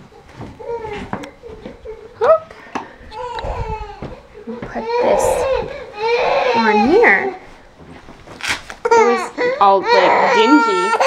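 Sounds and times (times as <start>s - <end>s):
toddler whimpering and crying: 0.6s - 2.3s, 3.1s - 7.4s, 8.8s - 11.0s.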